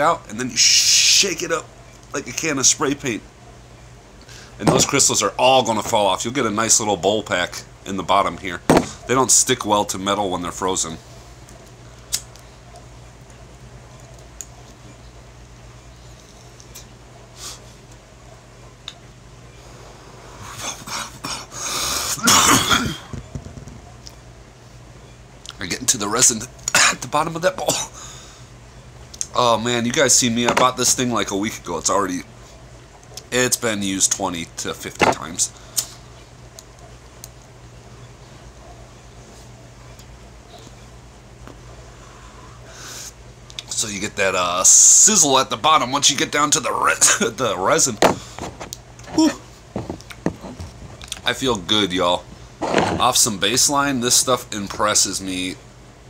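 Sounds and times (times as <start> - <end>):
person coughing: 22.2 - 23.1, 27.7 - 28.0.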